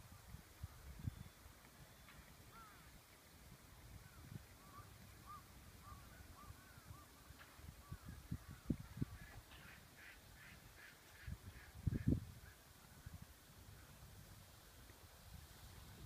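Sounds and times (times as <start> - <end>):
bird calls: 1.0 - 2.9, 4.1 - 11.0.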